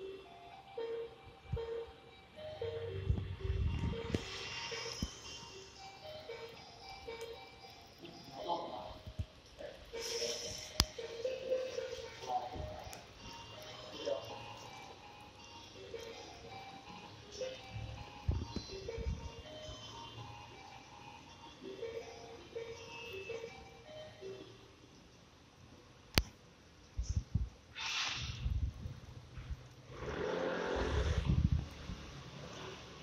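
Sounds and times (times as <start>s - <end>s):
music: 0.0s - 24.8s.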